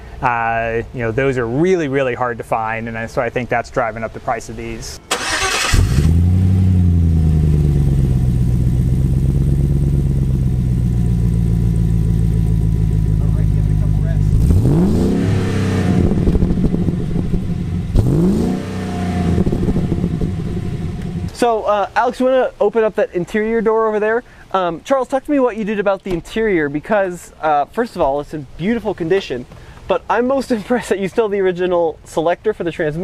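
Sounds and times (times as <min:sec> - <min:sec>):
engine cranking: 0:05.1 - 0:06.6
engine idling: 0:05.1 - 0:21.3
engine revving: 0:05.1 - 0:21.3.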